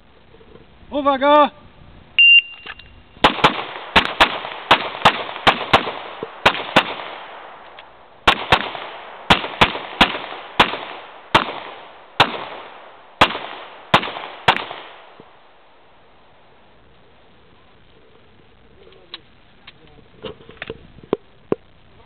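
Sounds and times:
pistol shots with echo: 3.2s - 7.6s, 8.2s - 15.2s.

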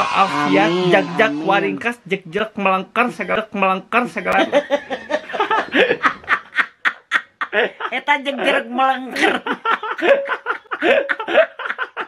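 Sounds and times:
elderly woman laughing: 4.4s - 12.0s.

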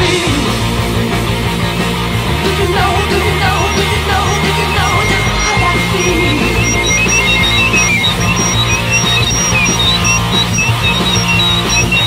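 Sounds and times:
rock band playing: 0.0s - 12.0s
squealing guitar notes: 2.4s - 12.0s.

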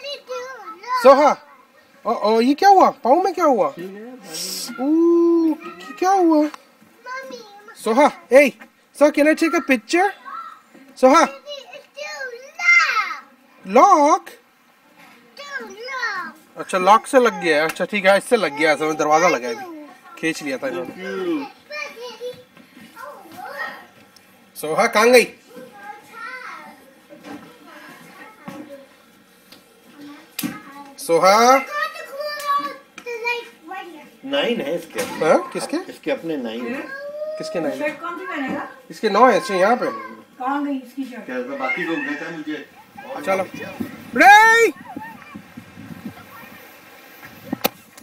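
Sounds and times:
person hissing sh: 4.2s - 4.8s
faint voices: 36.6s - 48.0s.

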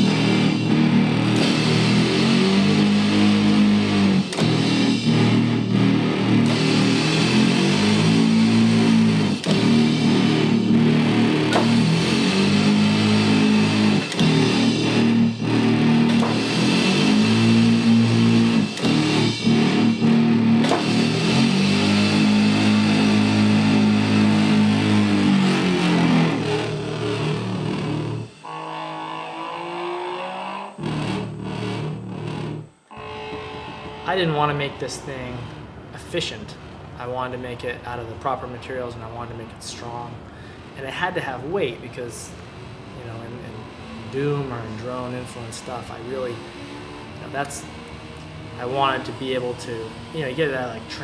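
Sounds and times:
distorted droning electronic music: 0.0s - 51.0s.

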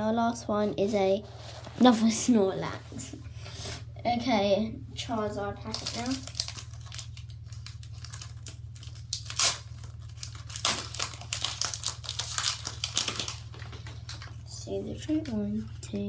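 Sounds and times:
low hum: 0.0s - 16.0s
foil pack tearing and crinkling: 5.6s - 14.4s.

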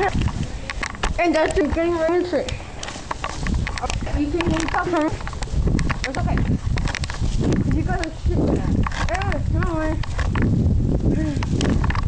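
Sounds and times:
scattered clicks: 0.0s - 10.6s.

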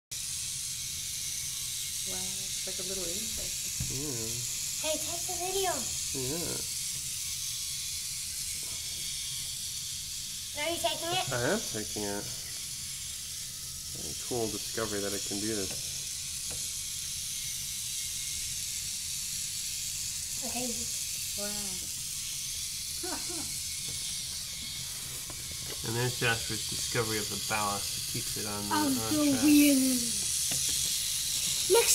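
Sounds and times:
toy motor running: 0.1s - 31.9s.

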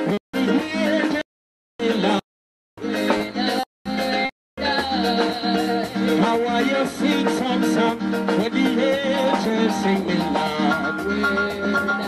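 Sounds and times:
guitar: 0.0s - 1.2s, 1.8s - 2.2s, 2.8s - 12.0s
live band music: 0.0s - 1.2s, 1.8s - 2.2s, 2.8s - 12.0s
person singing: 0.0s - 2.2s, 2.8s - 12.0s.

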